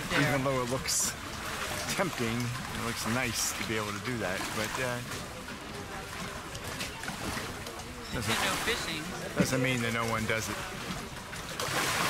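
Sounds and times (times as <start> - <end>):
water lapping against boats: 0.0 - 12.0.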